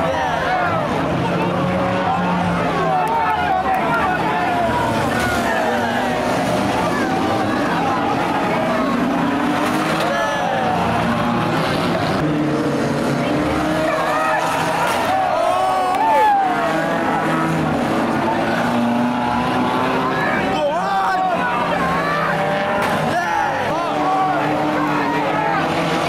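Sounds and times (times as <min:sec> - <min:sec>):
crowd voices: 0:00.0 - 0:26.0
racing car engines revving: 0:00.0 - 0:26.0.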